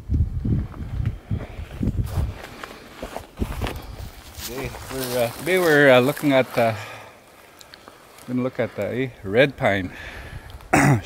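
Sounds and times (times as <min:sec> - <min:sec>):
footsteps on rocky ground: 0:00.5 - 0:09.0.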